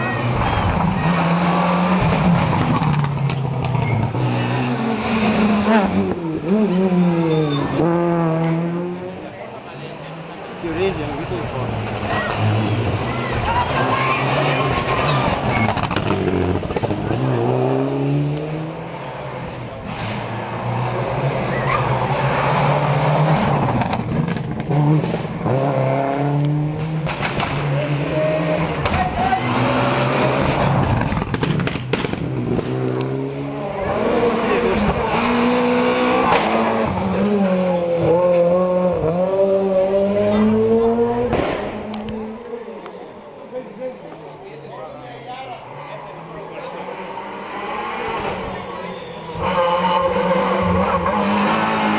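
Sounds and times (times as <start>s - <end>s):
car engine revving hard: 11.4s - 42.6s, 46.2s - 51.9s.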